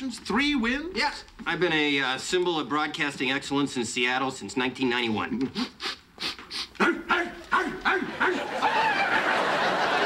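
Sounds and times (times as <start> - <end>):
breathy huffs: 5.5 - 7.0
man imitating dog barks: 6.8 - 8.5.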